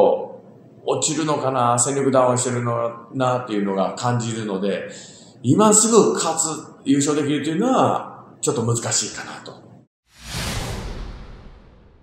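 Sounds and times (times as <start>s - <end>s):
low rumble: 10.1s - 12.0s
whoosh: 10.1s - 12.0s.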